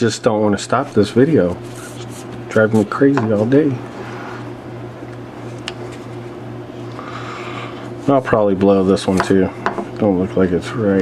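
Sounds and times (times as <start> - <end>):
cord rubbing softly: 0.8 - 4.5.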